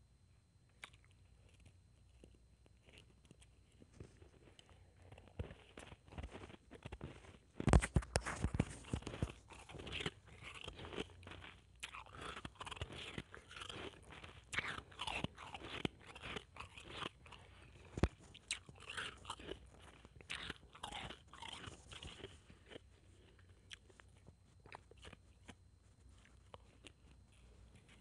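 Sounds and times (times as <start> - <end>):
ice chewing crunches: 0.7 - 28.0.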